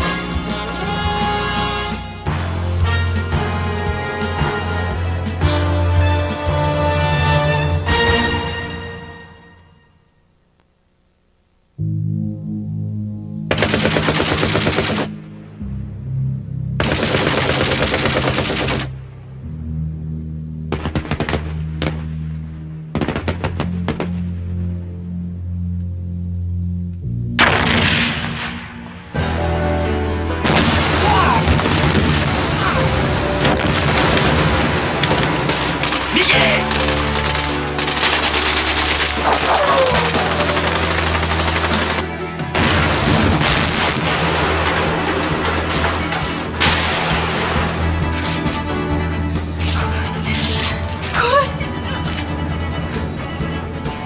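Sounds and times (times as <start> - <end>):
film score with low drone: 0.0 - 54.0
low synthesizer music: 11.7 - 31.0
automatic rifle fire: 13.5 - 15.1, 16.8 - 18.9, 35.1 - 39.5.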